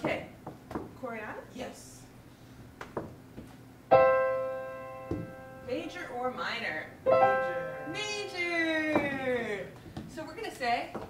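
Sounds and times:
piano chord ringing: 3.9 - 6.1, 7.0 - 9.0.

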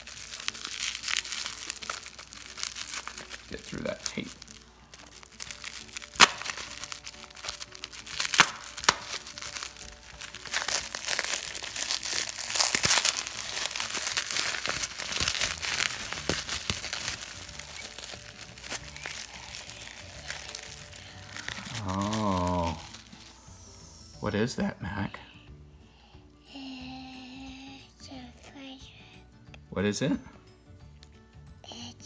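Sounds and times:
bubble wrap snapping: 0.0 - 23.4
bubble wrap crinkling: 0.0 - 23.9.

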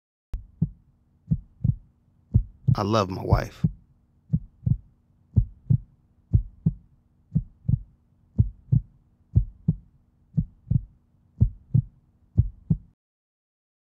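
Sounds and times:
faint low hum: 0.4 - 13.0
heartbeat thumps: 0.4 - 13.0.

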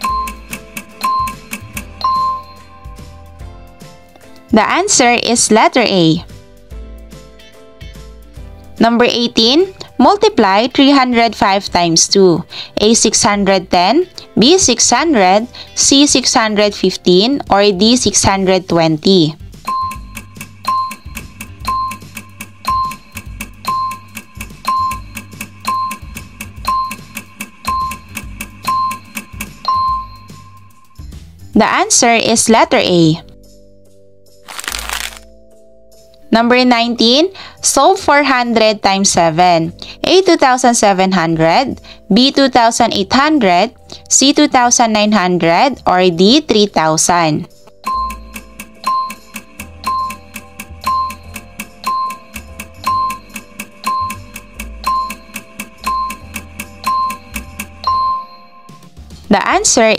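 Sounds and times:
fast ticking: 0.0 - 2.0, 19.7 - 29.6, 47.8 - 58.0
countdown timer beeping: 0.0 - 3.3, 14.4 - 32.3, 44.2 - 59.9
background piano music: 0.0 - 59.9
low repeating bass line: 47.8 - 59.2.

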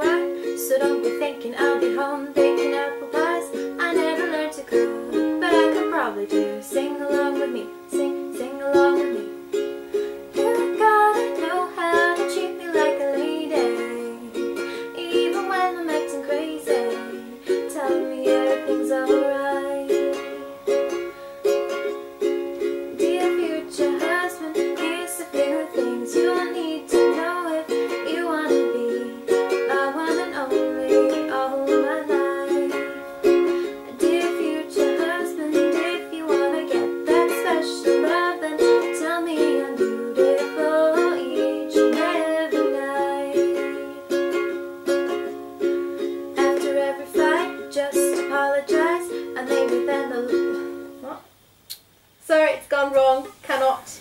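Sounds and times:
woman singing: 0.0 - 9.6, 10.3 - 21.0, 22.6 - 44.4, 46.3 - 51.2
ukulele strumming chords: 0.0 - 51.3.

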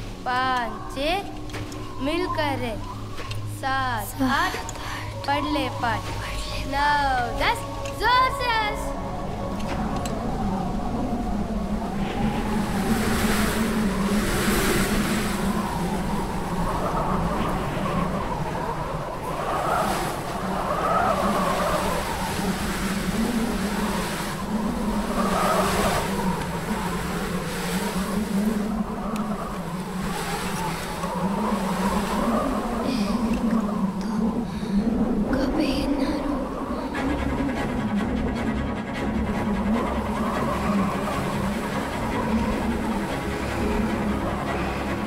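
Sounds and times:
steady low drone: 0.0 - 45.0
wind howling and gusting: 0.0 - 45.0.

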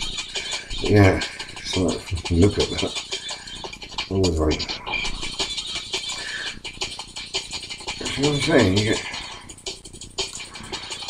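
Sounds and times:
rapid clicking and rattling: 0.0 - 11.0.

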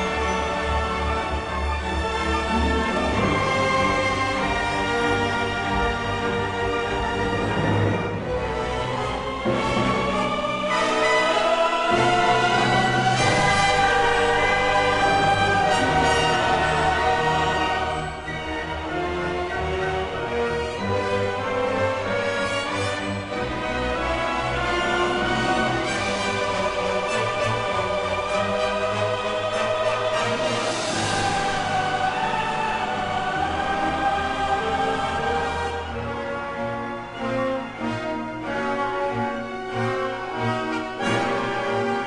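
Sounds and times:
orchestra and choir sustained chords: 0.0 - 42.0.

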